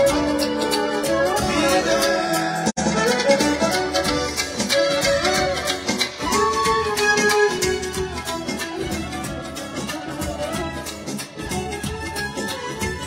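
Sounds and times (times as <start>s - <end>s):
high lead melody: 0.0s - 13.0s.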